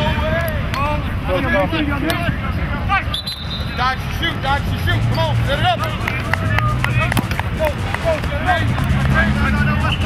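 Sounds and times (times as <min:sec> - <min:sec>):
players shouting: 0:00.0 - 0:10.0.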